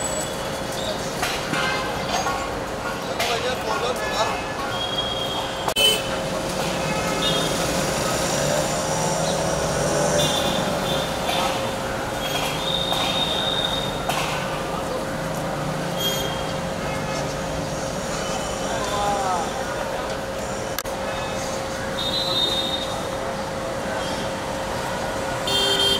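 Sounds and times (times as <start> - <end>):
traffic noise: 0.0 - 25.9.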